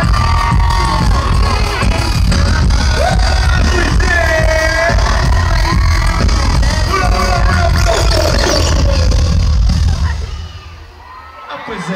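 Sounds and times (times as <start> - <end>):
live pop music through speakers: 0.0 - 11.9.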